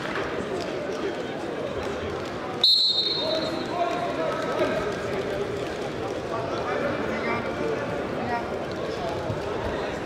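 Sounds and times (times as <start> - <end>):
murmur of voices: 0.0 - 10.0
referee's whistle: 2.6 - 3.6.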